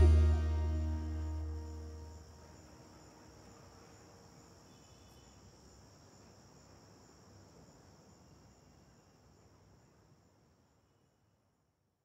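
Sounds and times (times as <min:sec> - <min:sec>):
high-pitched whine: 0:00.0 - 0:02.2
faint hiss: 0:00.0 - 0:11.5.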